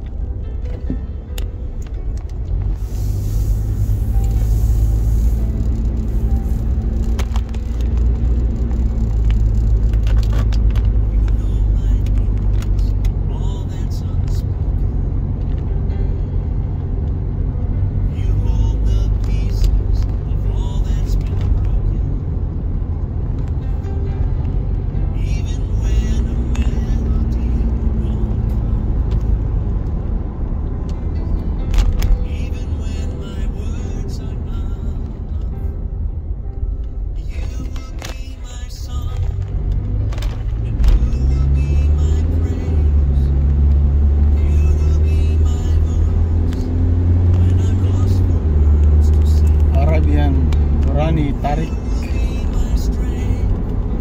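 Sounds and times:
car engine and tyres rumble: 0:00.0 - 0:54.0
music playing: 0:00.0 - 0:54.0
person speaking: 0:48.9 - 0:52.0.

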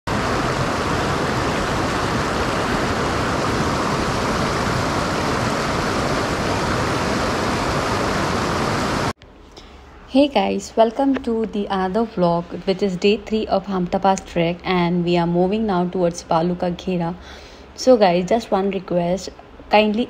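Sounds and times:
stream rushing over rocks: 0:00.1 - 0:09.1.

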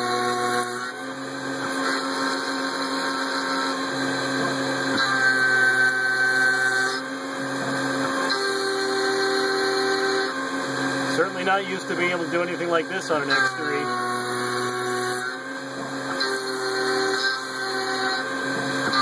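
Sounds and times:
milling spindle whistling cut: 0:00.0 - 0:19.0.

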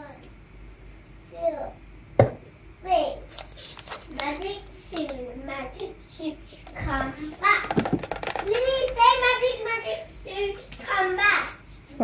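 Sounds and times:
child talking: 0:00.0 - 0:00.2, 0:01.3 - 0:01.8, 0:02.8 - 0:03.3, 0:04.1 - 0:12.0.

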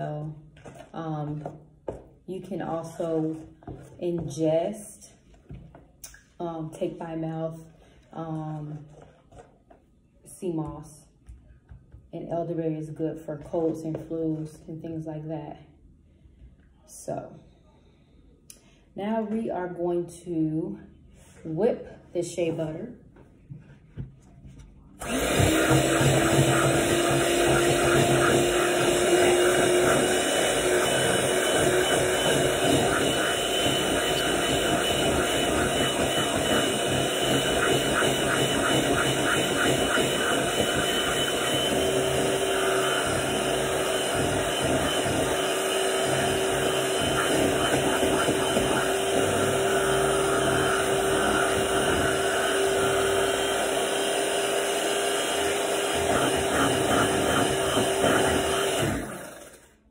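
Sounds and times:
electric hand mixer whining: 0:25.0 - 0:59.8.

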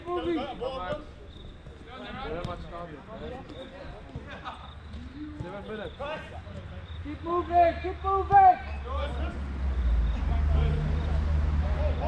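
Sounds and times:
distant players calling out: 0:04.6 - 0:12.0.

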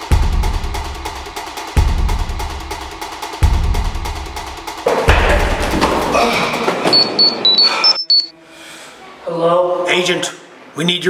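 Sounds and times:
short high-pitched electronic beeps: 0:07.2 - 0:08.3.

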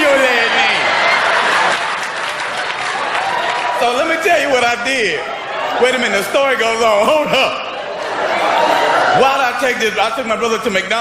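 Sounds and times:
audience applauding: 0:00.0 - 0:04.9.

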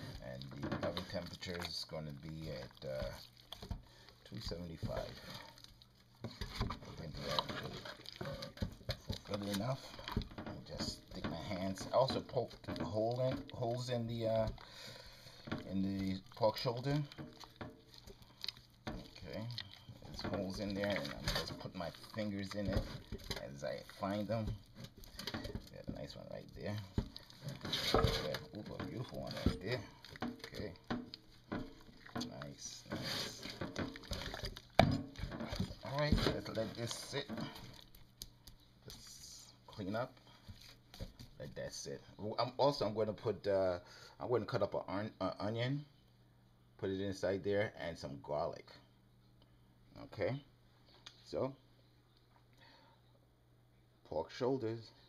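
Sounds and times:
hands squishing raw meat: 0:00.0 - 0:39.3.

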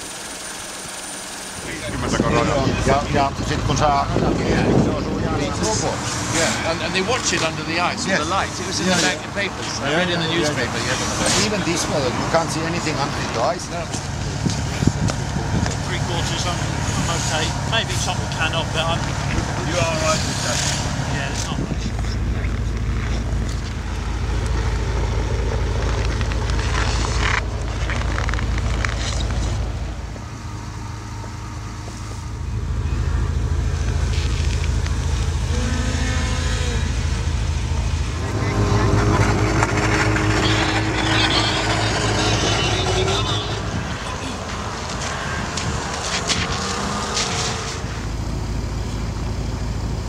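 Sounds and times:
car engine idling: 0:00.0 - 0:50.0
background voices: 0:25.8 - 0:49.2.

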